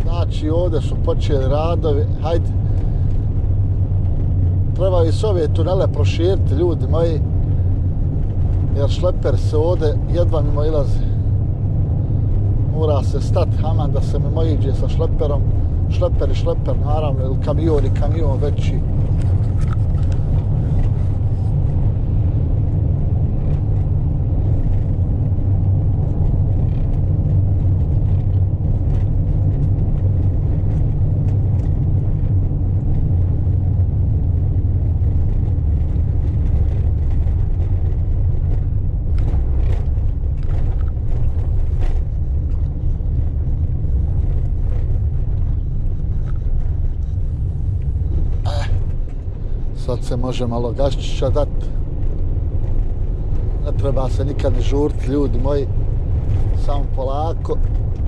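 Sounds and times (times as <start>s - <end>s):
engine and tyres rumbling: 0.0s - 58.0s.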